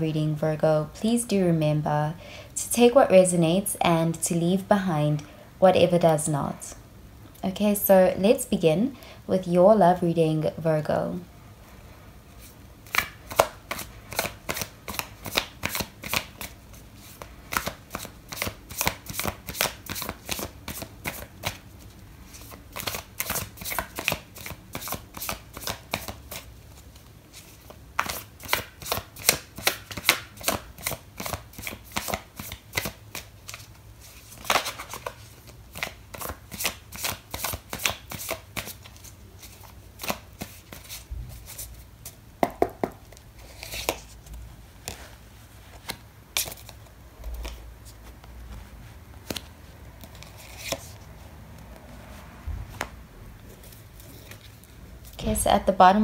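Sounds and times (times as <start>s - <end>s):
cards being shuffled: 12.4s - 51.1s.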